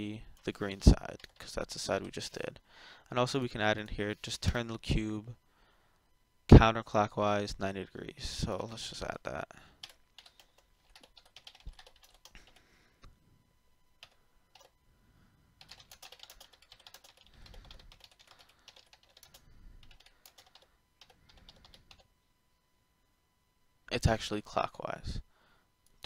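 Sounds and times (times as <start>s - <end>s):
keyboard typing: 9.8s - 12.6s, 14.0s - 14.7s, 15.6s - 22.1s.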